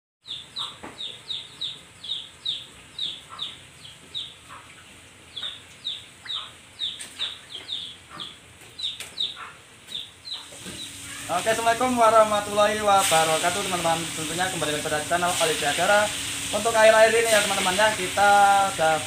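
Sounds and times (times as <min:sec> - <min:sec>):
bird chirping: 0:00.2 - 0:11.3.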